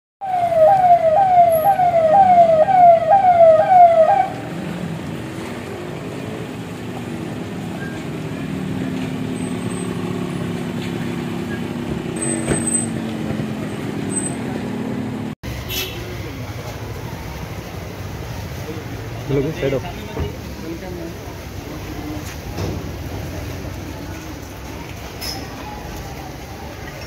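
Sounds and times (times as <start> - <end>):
electronic siren wailing: 0.2 - 4.4
car engines running: 0.3 - 27.0.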